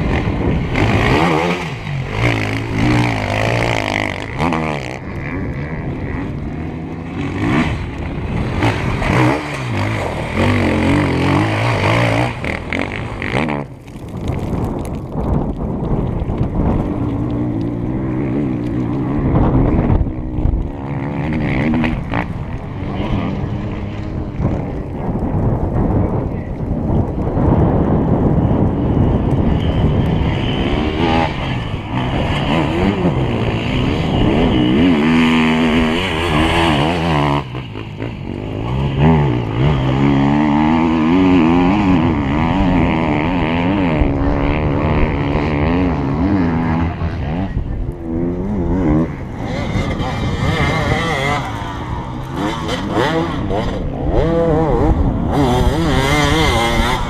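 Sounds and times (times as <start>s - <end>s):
motorcycle engines revving: 0.0s - 57.0s.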